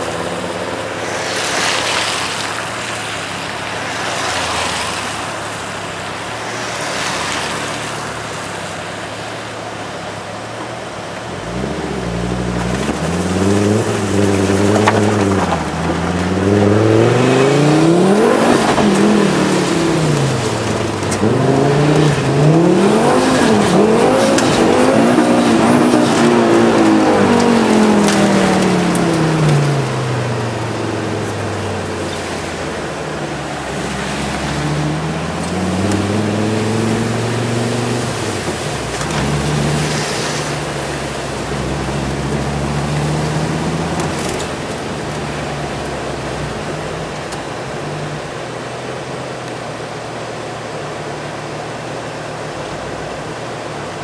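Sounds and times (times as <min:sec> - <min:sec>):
car engine revving through gears: 0:11.0 - 0:49.5.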